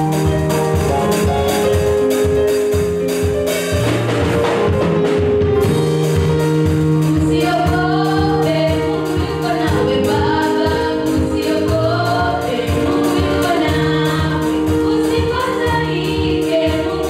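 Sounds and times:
drums: 0:00.0 - 0:17.0
girls' group singing gospel: 0:07.2 - 0:17.0.

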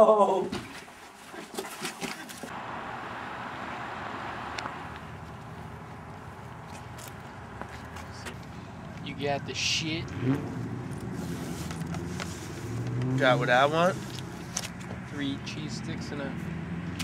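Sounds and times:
traffic rumble and hiss: 0:02.5 - 0:17.0.

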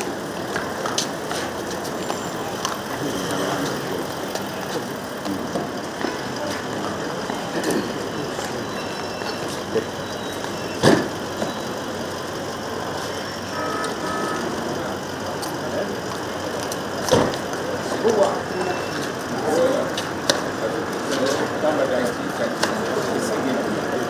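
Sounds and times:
murmured voices: 0:00.0 - 0:24.0
vehicle engine idling: 0:00.0 - 0:24.0.

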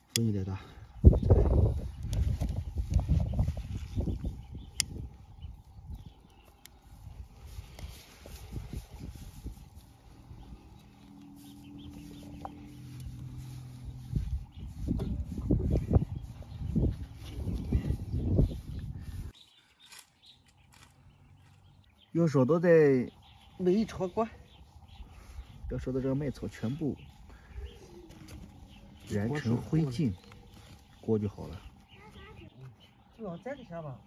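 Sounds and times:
wind buffeting microphone: 0:00.8 - 0:19.4.

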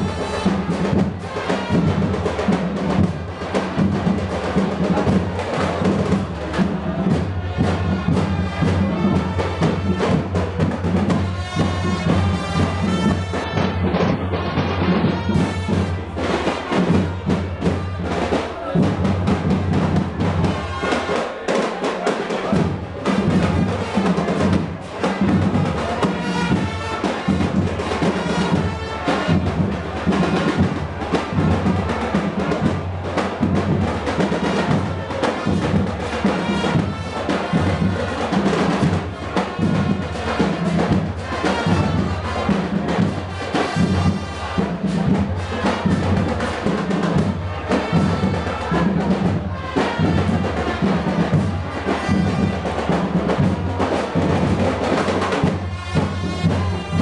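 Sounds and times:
marching band playing: 0:00.0 - 0:57.0
snare and bass drums: 0:00.0 - 0:57.0.

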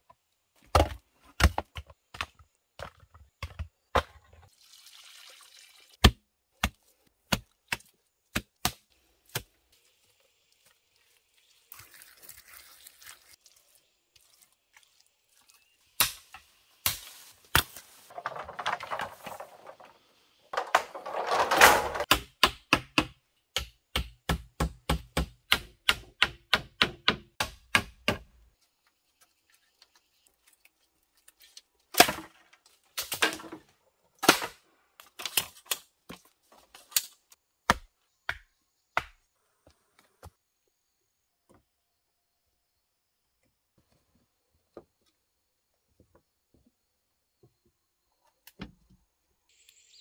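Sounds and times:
scraping: 0:17.7 - 0:22.1
hand tool striking wood: 0:21.8 - 0:28.3.

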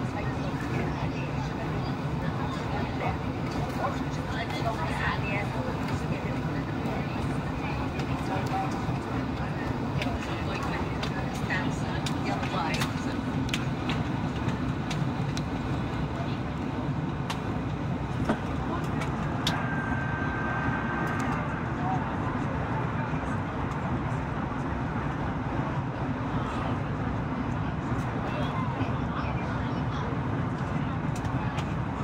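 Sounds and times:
airplane cabin drone: 0:00.0 - 0:32.0
steady high tone: 0:19.5 - 0:21.9.

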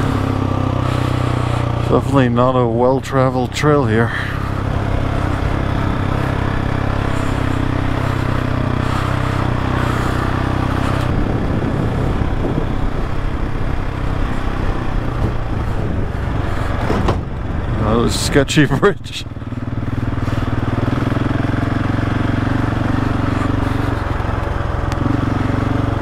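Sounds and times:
motorcycle engine running: 0:00.0 - 0:26.0
wind and road noise: 0:00.0 - 0:26.0.

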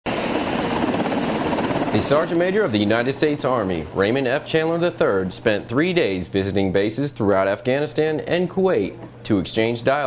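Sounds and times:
helicopter running: 0:00.1 - 0:06.3.

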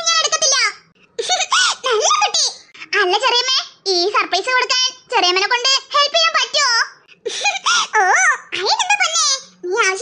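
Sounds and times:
cartoon children laughing: 0:01.2 - 0:02.0, 0:07.2 - 0:08.6.

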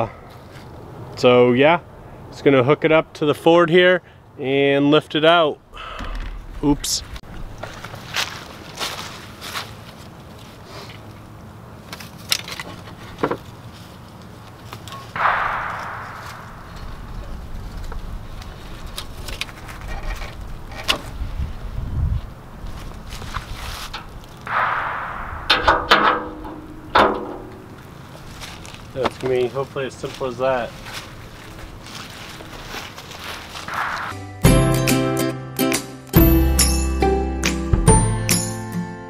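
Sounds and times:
low thump: 0:15.2 - 0:18.0, 0:24.5 - 0:27.7
brief rushing sounds: 0:15.2 - 0:18.3, 0:24.5 - 0:27.8, 0:33.6 - 0:34.4.

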